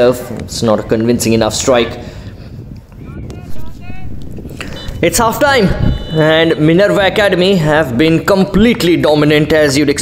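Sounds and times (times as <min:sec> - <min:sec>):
distant shouts: 0:02.9 - 0:07.2.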